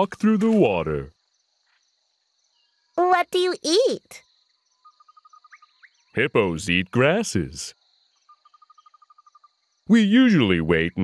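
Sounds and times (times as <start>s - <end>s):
person speaking: 0.0s - 1.1s, 6.2s - 7.7s, 9.9s - 11.0s
high-pitched insect chirring: 0.4s - 10.4s.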